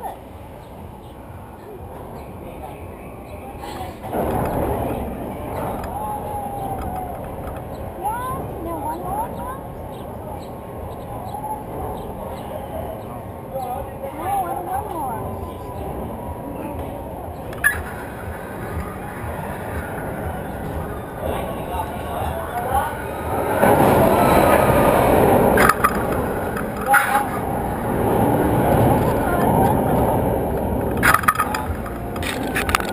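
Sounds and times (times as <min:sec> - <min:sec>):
faint voices: 0:00.0 - 0:32.9
roller coaster car running: 0:00.0 - 0:32.9
sharp metal clanks: 0:25.6 - 0:27.5.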